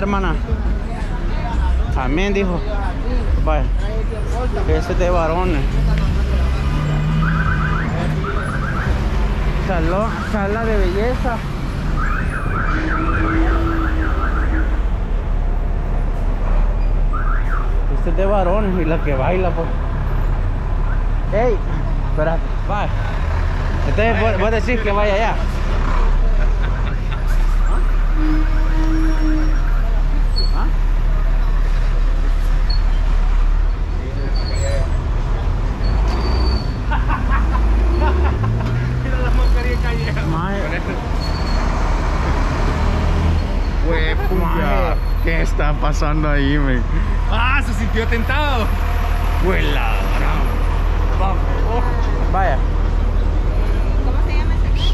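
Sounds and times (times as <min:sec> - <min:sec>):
street traffic rumble: 0:00.0 - 0:54.9.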